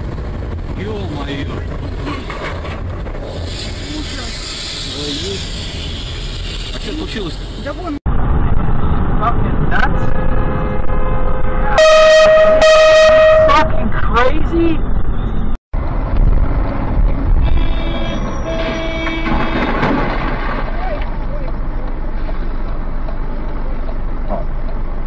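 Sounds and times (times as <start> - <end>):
road rumble: 0.0 - 25.0
car horn: 9.8 - 13.8, 17.3 - 20.1.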